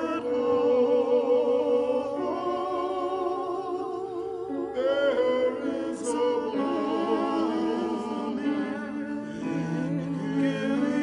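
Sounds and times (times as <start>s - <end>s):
vocal ensemble singing: 0.0s - 11.0s.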